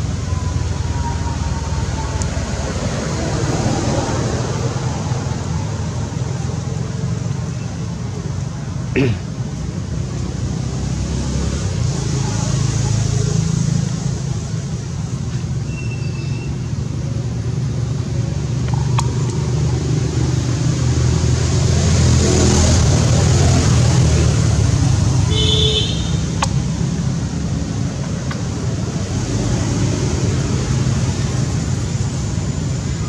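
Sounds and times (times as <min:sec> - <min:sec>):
low rumble like distant traffic: 0:00.0 - 0:33.0.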